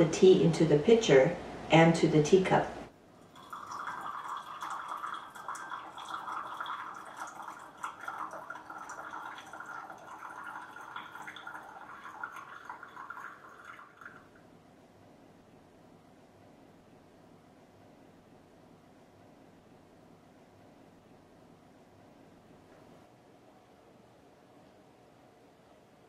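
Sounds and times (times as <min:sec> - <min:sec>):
tea pouring into glass pitcher: 0:03.2 - 0:14.4.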